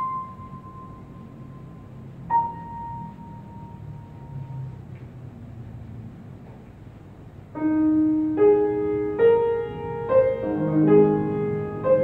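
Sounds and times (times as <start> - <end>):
piano note ringing: 0.0 - 4.9, 7.6 - 12.0.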